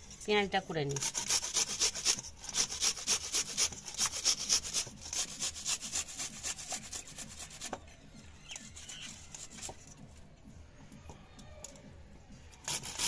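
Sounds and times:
onion scraping on grater: 0:00.8 - 0:07.8, 0:08.4 - 0:09.9, 0:12.6 - 0:13.0.

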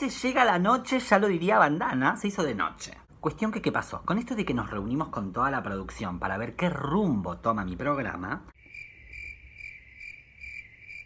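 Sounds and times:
crickets chirping: 0:08.6 - 0:11.0.

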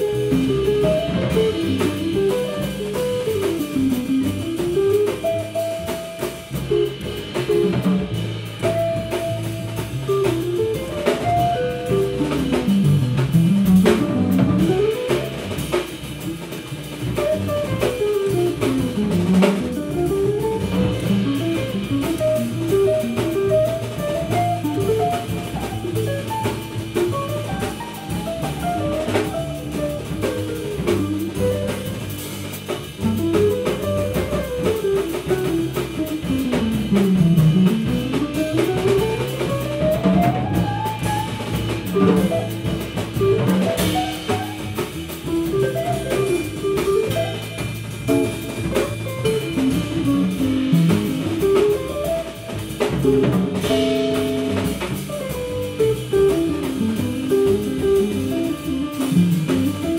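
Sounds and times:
double bass: 0:00.0 - 0:59.9
drum kit: 0:00.0 - 0:59.9
jazz guitar: 0:00.0 - 0:59.9.

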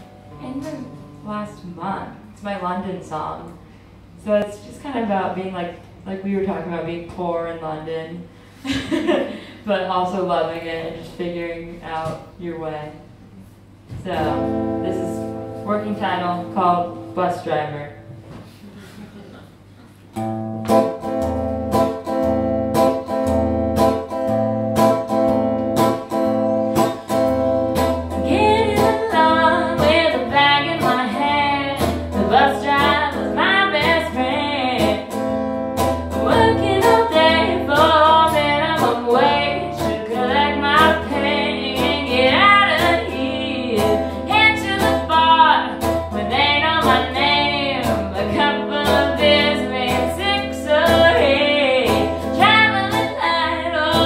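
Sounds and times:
strummed electric guitar chords: 0:20.2 - 0:54.0
woman singing: 0:28.1 - 0:35.2, 0:36.2 - 0:54.0.

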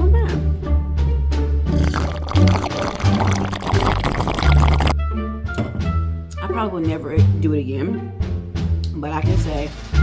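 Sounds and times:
background music: 0:00.0 - 0:10.0
drink sucked through a straw: 0:01.7 - 0:05.0.

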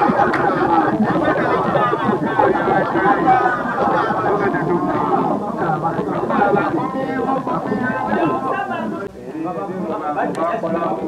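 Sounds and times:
people talking close up: 0:00.0 - 0:11.0.

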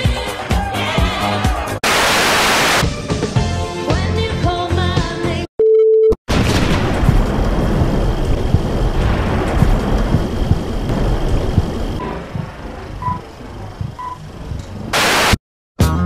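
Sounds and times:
funk disco music: 0:00.0 - 0:01.8
short beeps: 0:05.6 - 0:06.2, 0:13.0 - 0:13.2, 0:14.0 - 0:14.2
crackling film static hiss: 0:13.2 - 0:15.4.

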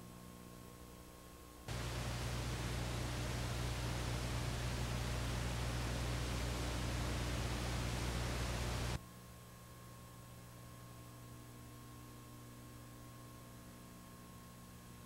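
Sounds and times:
low electrical hum: 0:00.0 - 0:15.0
static hiss: 0:01.7 - 0:09.0.

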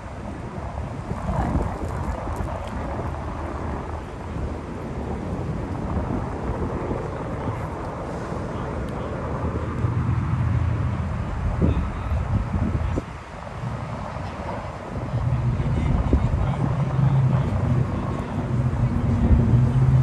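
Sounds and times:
road traffic rumble: 0:00.0 - 0:20.0
wind on microphone: 0:00.0 - 0:20.0.

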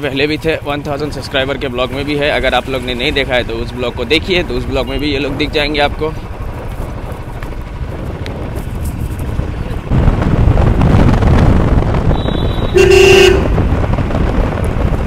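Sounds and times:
motorcycle engine running: 0:00.0 - 0:15.0
road noise: 0:00.0 - 0:15.0
vehicle horn honking: 0:12.1 - 0:13.6.

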